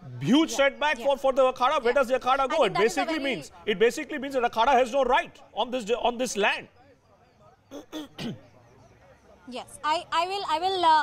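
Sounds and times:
person clearing throat: 7.7s - 8.4s.

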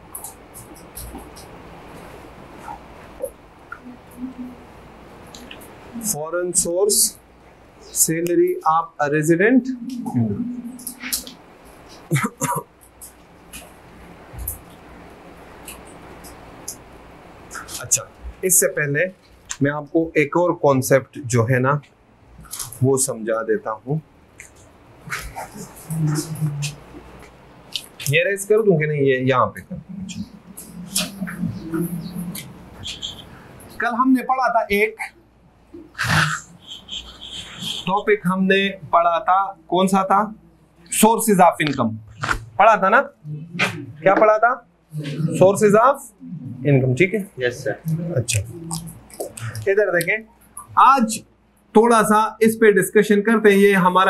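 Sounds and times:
low room hum: 0.0s - 54.0s
person humming: 3.8s - 4.7s, 9.6s - 11.2s, 25.1s - 26.9s, 29.7s - 33.4s
marker squeaking on whiteboard: 9.8s - 12.1s, 24.4s - 28.2s, 29.6s - 33.8s, 35.7s - 38.2s.

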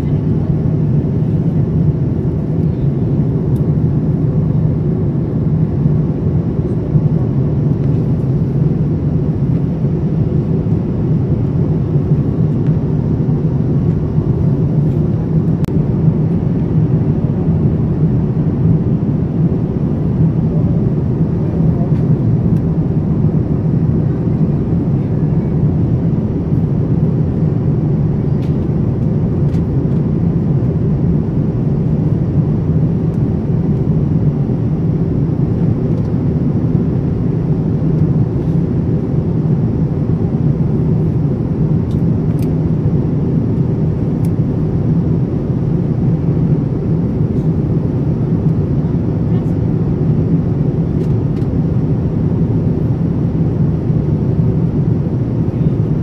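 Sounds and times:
airliner cabin engine drone: 0.0s - 56.0s.

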